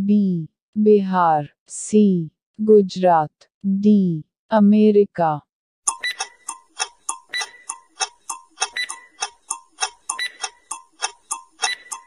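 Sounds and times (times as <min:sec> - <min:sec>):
clock ticking timer: 0:05.9 - 0:12.0.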